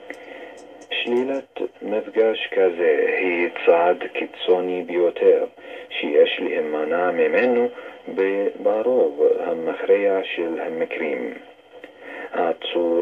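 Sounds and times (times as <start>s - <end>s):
person talking over radio: 0.9s - 11.4s.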